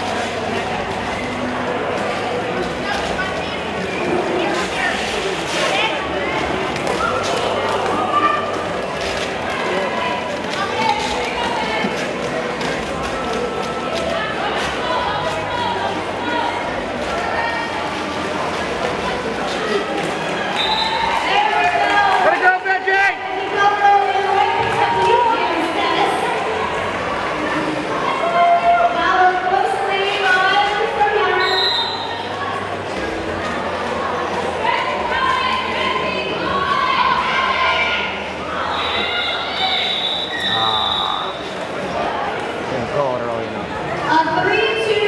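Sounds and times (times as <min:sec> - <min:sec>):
echoing voices and chatter: 0:00.0 - 0:45.0
referee whistle blasts: 0:20.6 - 0:21.0, 0:31.4 - 0:32.1, 0:39.7 - 0:41.4.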